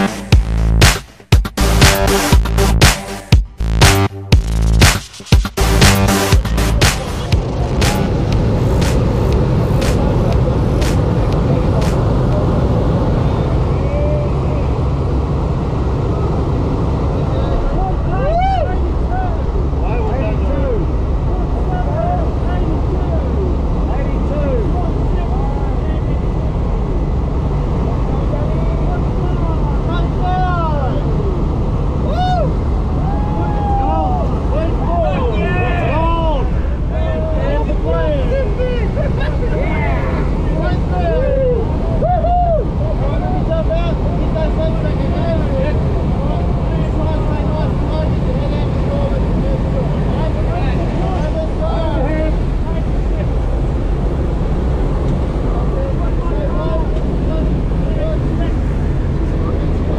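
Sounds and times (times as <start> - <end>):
indistinct voices: 5.4 - 59.9
light aircraft engine drone: 7.0 - 59.9.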